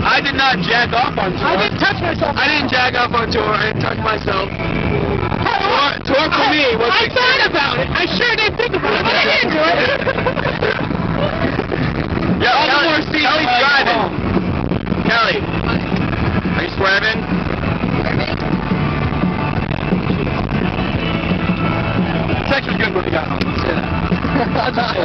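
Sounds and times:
voices inside a car: 0.0 - 18.5
road noise: 0.0 - 25.0
people laughing or shouting: 6.2 - 11.9, 24.2 - 25.0
music with held notes: 13.7 - 25.0.

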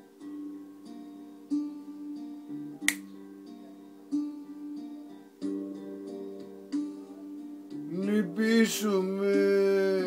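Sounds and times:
guitar plucked notes: 0.0 - 10.0
sharp click: 2.8 - 3.0.

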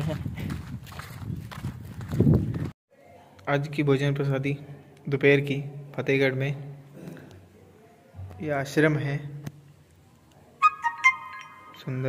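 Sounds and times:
footsteps on dirt road: 0.0 - 2.8.

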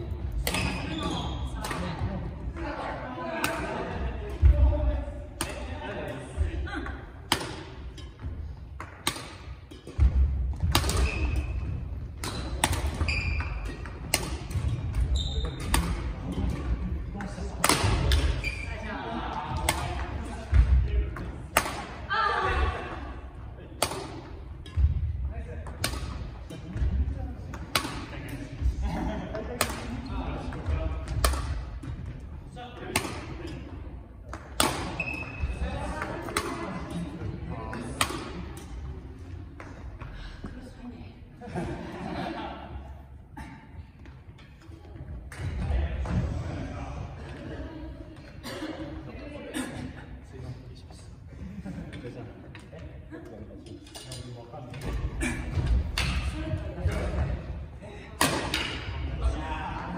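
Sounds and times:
rackets hitting shuttlecocks: 7.1 - 18.6, 19.5 - 22.1, 23.7 - 28.7, 29.3 - 32.2, 32.8 - 40.2, 54.7 - 57.4, 58.2 - 59.2.

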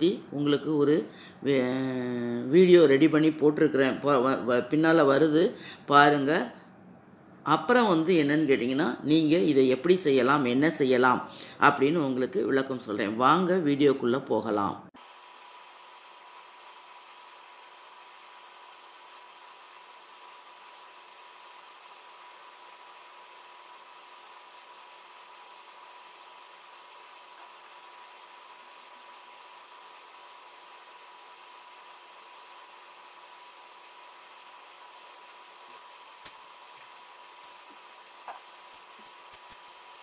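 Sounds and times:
faint steady hiss: 14.8 - 40.0.

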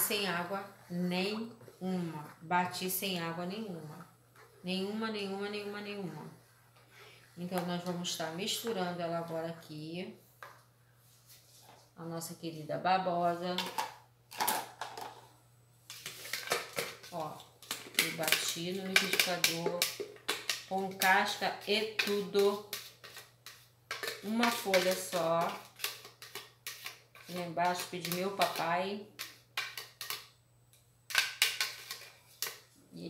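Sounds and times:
spatula scraping plastic jug: 20.9 - 28.7.

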